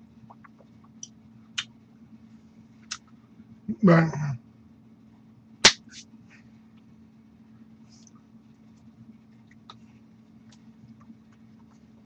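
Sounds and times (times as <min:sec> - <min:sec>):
hand smack: 0:05.6 - 0:06.0.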